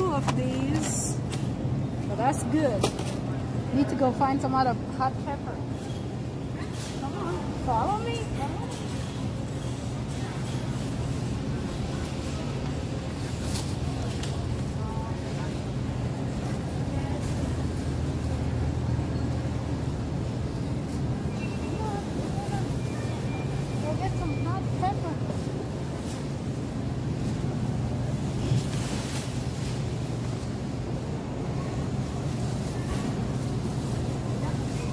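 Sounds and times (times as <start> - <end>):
low hum of store: 0.0 - 34.9.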